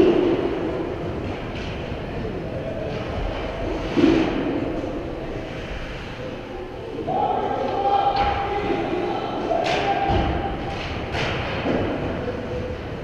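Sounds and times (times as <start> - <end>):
rumbling din of ice rink: 0.0 - 13.0.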